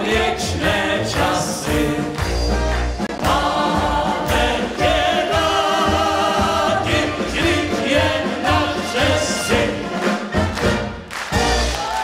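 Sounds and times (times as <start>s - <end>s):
singers singing together: 0.0s - 10.6s
brass band with tubas and drums: 0.0s - 12.0s.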